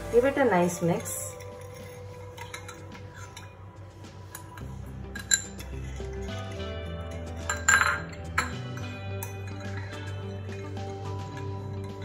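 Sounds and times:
background music: 0:00.0 - 0:12.0
spoon clinking against glass bowl: 0:04.3 - 0:12.0.

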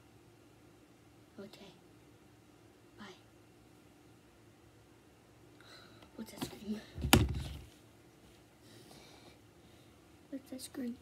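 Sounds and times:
loud thump on phone: 0:07.0 - 0:07.6.

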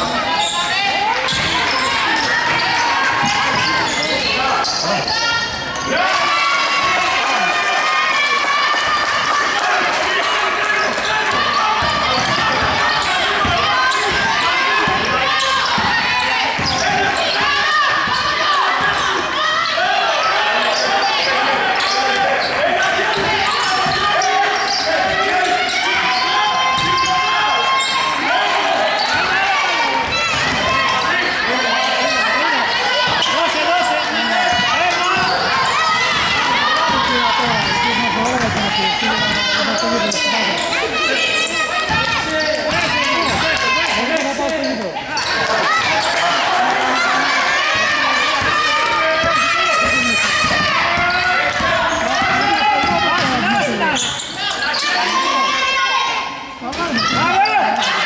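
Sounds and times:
people calling out: 0:00.0 - 0:58.0.

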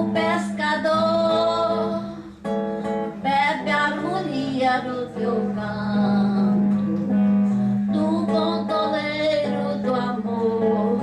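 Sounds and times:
woman singing: 0:00.0 - 0:02.5, 0:03.1 - 0:11.0
acoustic guitar: 0:00.0 - 0:11.0.

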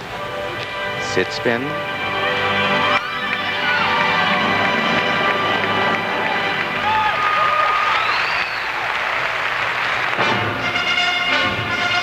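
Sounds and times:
audience applauding: 0:02.5 - 0:10.9
high whistle: 0:06.8 - 0:08.8.

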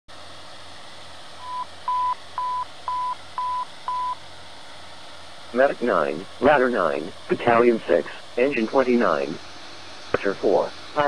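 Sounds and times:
radio hiss and hum: 0:00.2 - 0:11.0.

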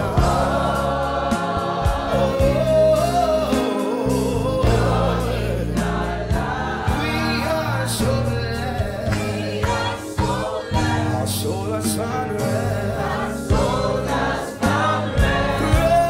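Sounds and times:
bass guitar: 0:00.0 - 0:16.0
choir singing: 0:00.0 - 0:16.0
drums: 0:00.0 - 0:16.0.

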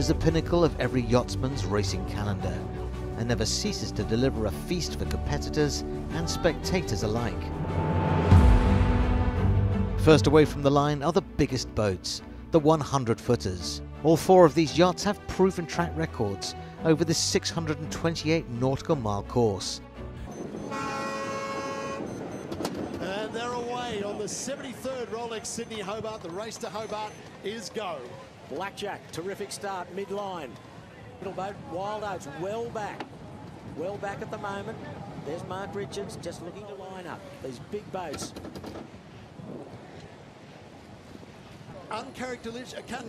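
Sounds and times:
boat horn blast: 0:20.2 - 0:23.0
wind on microphone: 0:20.2 - 0:24.4, 0:30.7 - 0:41.9.

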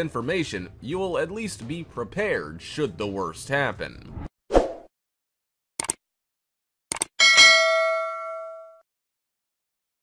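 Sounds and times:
bright bell ding: 0:07.2 - 0:08.8.

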